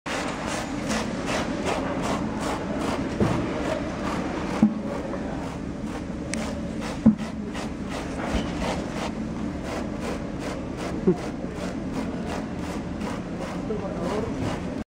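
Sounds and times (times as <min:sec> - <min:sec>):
hand tool rasping foam: 0:00.1 - 0:14.8.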